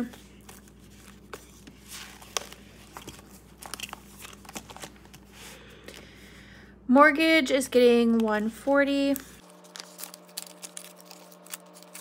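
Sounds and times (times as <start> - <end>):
paper and plastic rustling: 0.0 - 6.1, 9.0 - 12.0.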